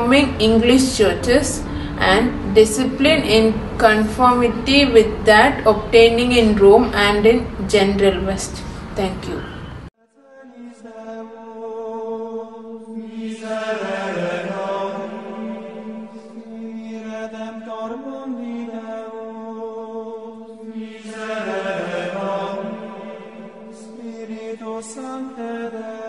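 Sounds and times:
slow chant: 0.0s - 6.3s, 8.5s - 26.0s
sustained drone: 0.0s - 9.9s, 20.0s - 26.0s.

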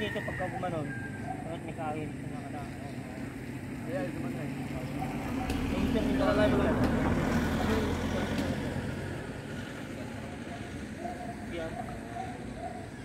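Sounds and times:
faint voices talking: 0.0s - 13.0s.

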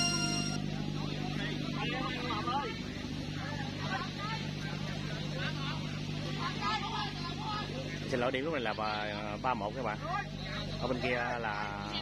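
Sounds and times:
steady low hum: 0.0s - 10.7s
chatter and calls: 0.0s - 12.0s.

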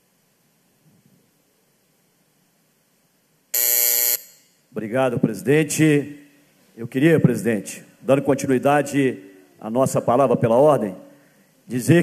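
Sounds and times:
electronic buzzer tone: 3.6s - 4.5s.

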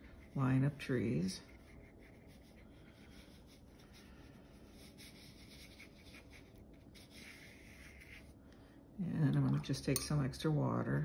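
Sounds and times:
brush scratching on paper: 0.0s - 8.4s.

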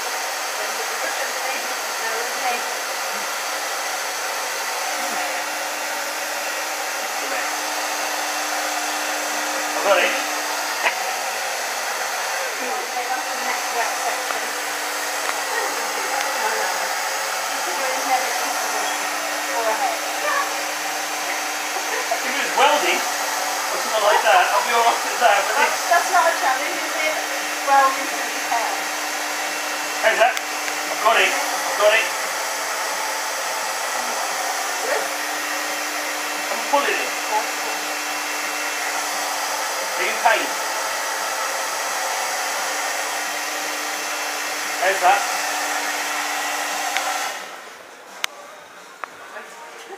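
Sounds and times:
hair dryer blowing: 0.0s - 48.2s.

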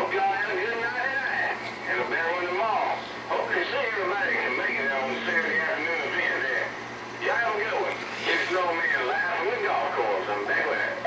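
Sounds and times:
faint steady hum: 0.0s - 11.0s
voices over radio speaker: 0.0s - 11.0s.

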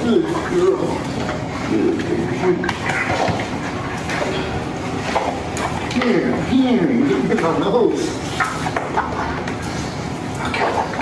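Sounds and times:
people talking: 0.0s - 1.1s, 1.7s - 2.8s, 5.9s - 8.2s.

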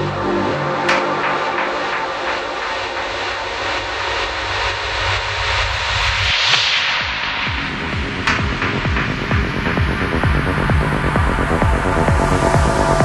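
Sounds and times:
low pulsing bass notes: 0.0s - 6.1s, 7.1s - 13.0s
filtered noise sweep: 0.0s - 13.0s
psychedelic trance music: 0.0s - 13.0s.

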